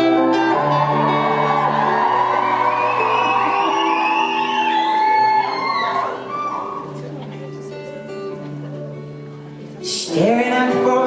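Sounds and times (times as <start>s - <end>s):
acoustic guitar strumming chords: 0.0s - 4.6s, 6.9s - 11.0s
high calls from audience: 0.0s - 7.0s
crowd voices: 0.0s - 11.0s.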